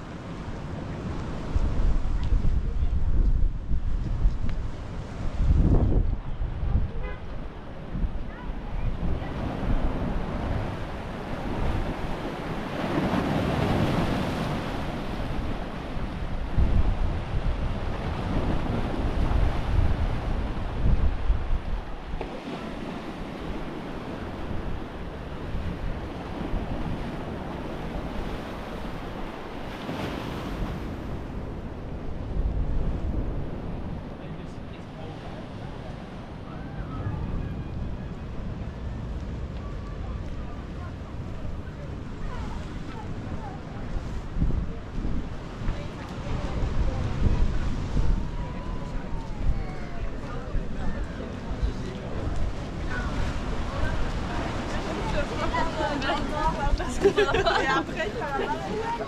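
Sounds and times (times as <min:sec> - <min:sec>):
sea waves breaking on rocks: 0:00.0 - 0:36.4, 0:37.2 - 0:59.0
wind gusting on microphone: 0:00.0 - 0:59.0.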